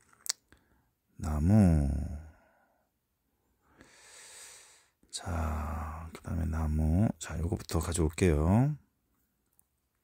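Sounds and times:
soft breath: 0:03.5 - 0:06.1
person speaking: 0:05.1 - 0:08.8.

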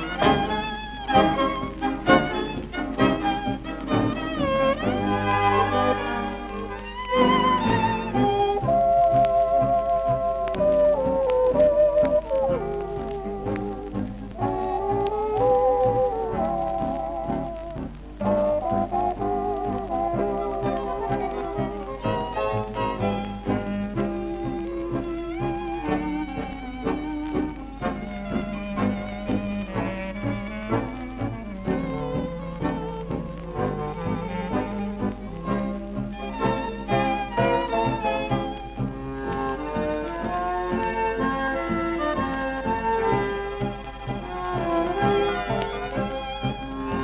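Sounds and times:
dance orchestra playing tango: 0:00.0 - 0:47.0
low record hum: 0:00.0 - 0:47.0.

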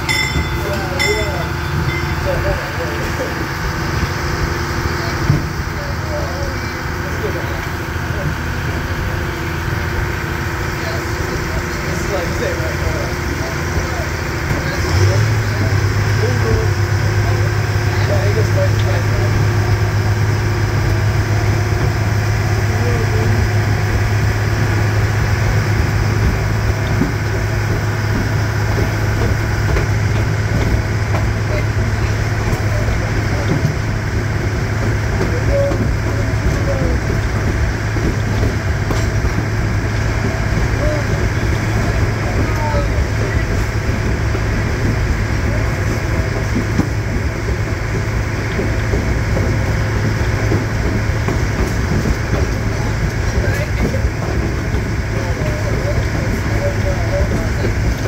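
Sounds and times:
diesel locomotive engine running: 0:00.0 - 0:58.0
strong steady low drone: 0:00.0 - 0:58.0.

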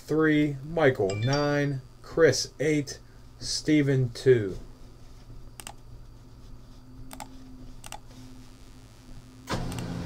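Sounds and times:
printer motor humming: 0:09.5 - 0:10.0.

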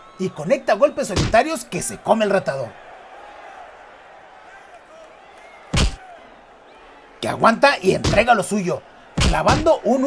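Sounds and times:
punch impact: 0:05.8 - 0:06.0, 0:08.0 - 0:08.3, 0:09.2 - 0:09.7.

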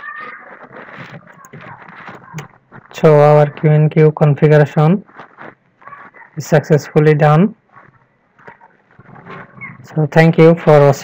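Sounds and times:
faint breath and mouth noises: 0:00.0 - 0:03.7, 0:05.0 - 0:07.0, 0:07.6 - 0:09.9.

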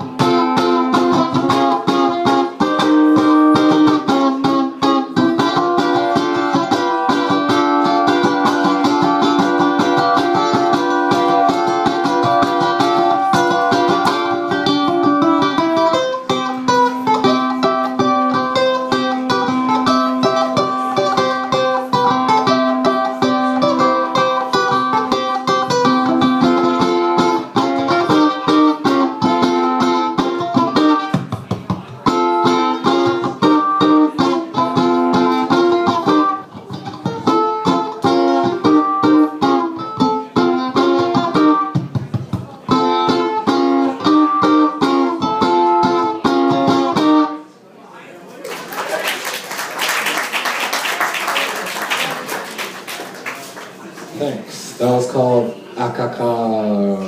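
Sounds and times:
ukulele picked melody: 0:00.0 - 0:47.4.

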